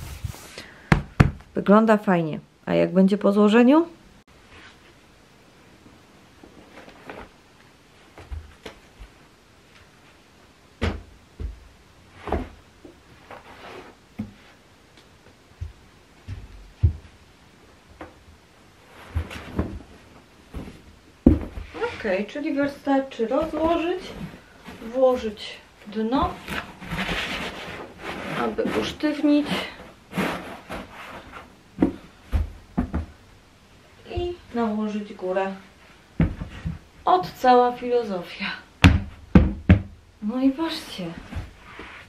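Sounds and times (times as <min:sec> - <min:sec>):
fabric rustle: 0:00.0 - 0:00.6, 0:12.0 - 0:14.6, 0:18.8 - 0:32.6, 0:41.0 - 0:42.0
light knocks and thumps: 0:10.8 - 0:13.0, 0:15.6 - 0:17.2, 0:19.0 - 0:21.8, 0:31.8 - 0:33.2, 0:36.2 - 0:37.4, 0:38.8 - 0:40.0.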